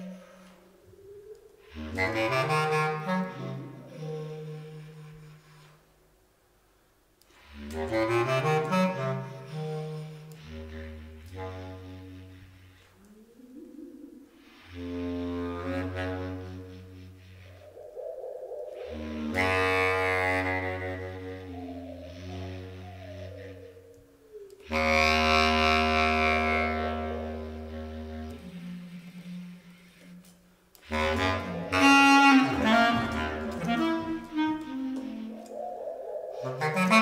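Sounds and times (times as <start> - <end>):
bass clarinet deep sustained notes: 0.0 - 0.9, 1.6 - 5.8, 7.6 - 17.8, 18.7 - 35.6, 36.3 - 37.0
higher wavering gliding tones: 13.0 - 14.7, 17.2 - 25.0, 31.2 - 37.0.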